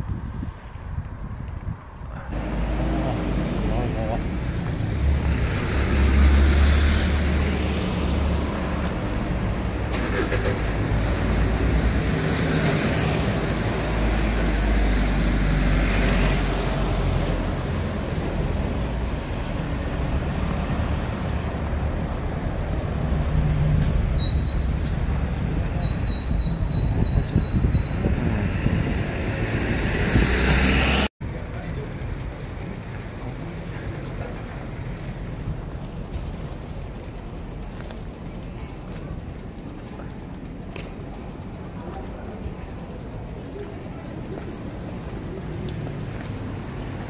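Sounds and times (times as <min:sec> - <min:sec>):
road traffic: 0:00.0 - 0:47.0
bus engine rumbling: 0:01.2 - 0:47.0.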